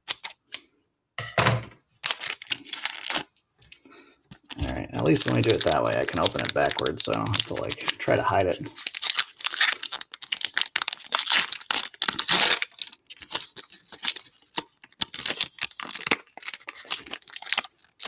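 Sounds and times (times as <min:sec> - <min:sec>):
wrapper tearing and crinkling: 0:02.0 - 0:03.3, 0:04.3 - 0:18.0.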